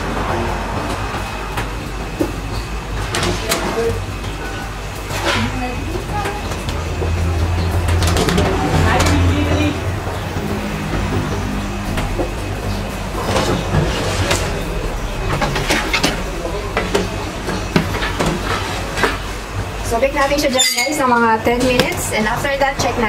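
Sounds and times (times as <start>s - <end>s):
low hum: 3.8s - 20.2s.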